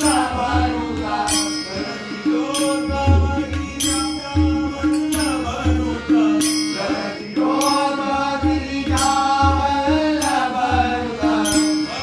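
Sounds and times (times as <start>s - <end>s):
men singing a chant: 0.0s - 12.0s
tabla playing: 0.0s - 12.0s.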